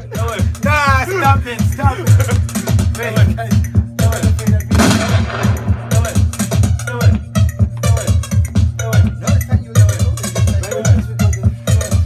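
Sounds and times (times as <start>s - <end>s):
house music: 0.0s - 12.0s
kick drum beat: 0.2s - 9.2s.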